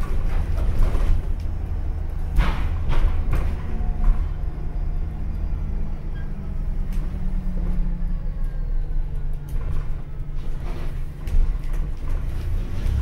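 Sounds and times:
bus drivetrain and road drone: 0.0 - 13.0.

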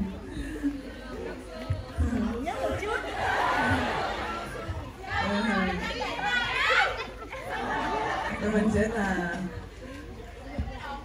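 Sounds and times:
overlapping chatter of voices: 0.0 - 11.0.

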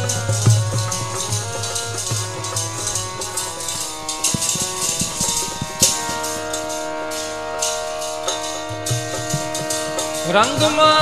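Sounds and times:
harmonium chords: 0.0 - 11.0
jingling rattle percussion: 0.0 - 11.0
tabla strokes: 0.0 - 11.0.

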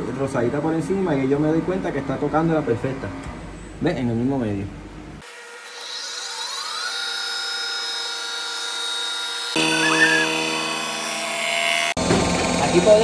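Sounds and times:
machine motor whine: 5.2 - 13.0.

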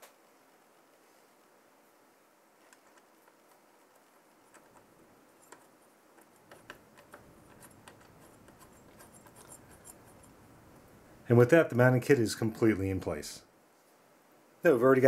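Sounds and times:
small metal clicks: 2.6 - 10.4.

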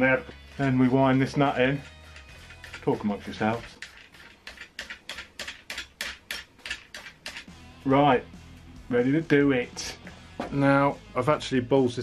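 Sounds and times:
quiet background music: 0.0 - 12.0
ratchet wrench clicking: 3.6 - 7.5.

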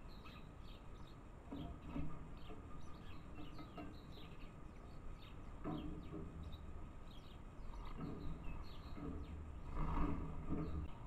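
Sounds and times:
sparrows chirping: 0.0 - 11.0.

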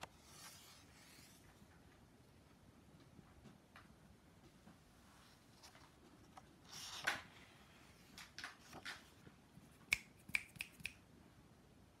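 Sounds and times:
paper pages turning: 0.0 - 1.4, 6.7 - 9.2.

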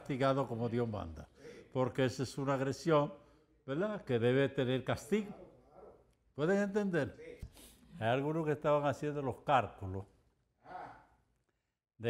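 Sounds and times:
man breathing: 1.3 - 1.7.

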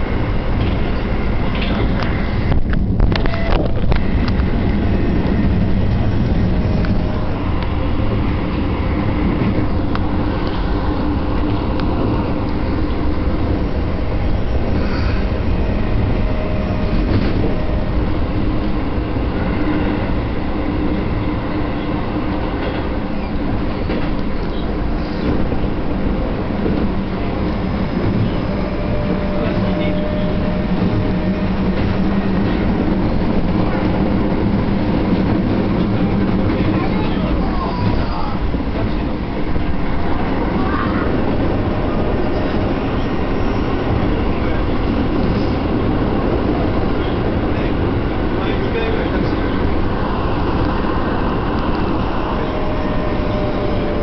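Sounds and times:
train wheels rumbling on rails: 0.0 - 54.0.

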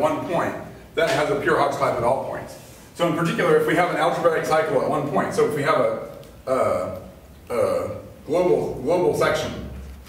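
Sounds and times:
man murmuring unclear words: 6.4 - 8.2.

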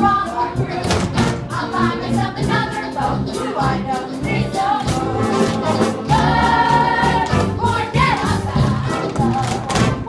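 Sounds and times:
group singing: 0.0 - 10.0
musical accompaniment: 0.0 - 10.0.

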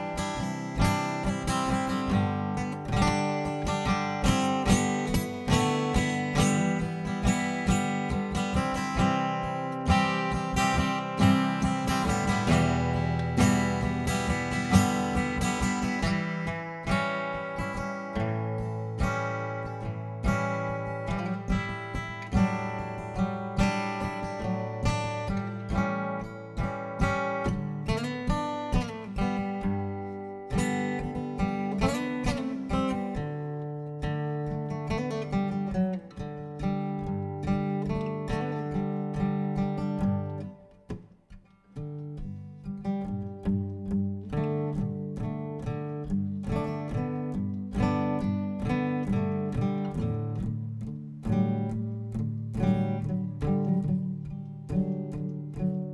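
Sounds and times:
acoustic guitar picking: 0.0 - 55.9.

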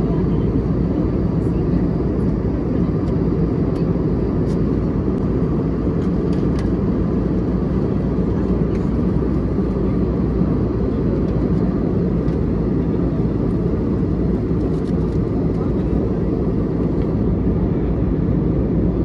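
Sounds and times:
jet cabin engine rumble: 0.0 - 19.0.

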